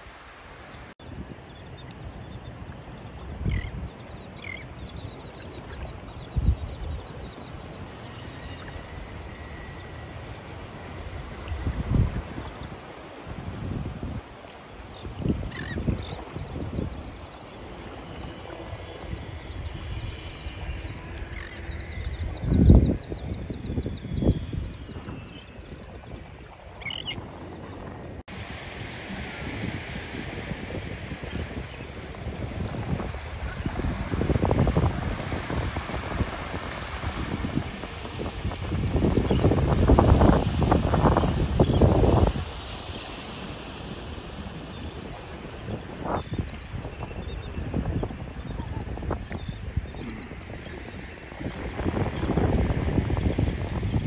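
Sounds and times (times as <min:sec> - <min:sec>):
seabird calls: 0:00.7 - 0:28.1, 0:28.9 - 0:54.0
wind gusting on microphone: 0:03.3 - 0:54.0
small waves washing onto sand: 0:28.2 - 0:54.0.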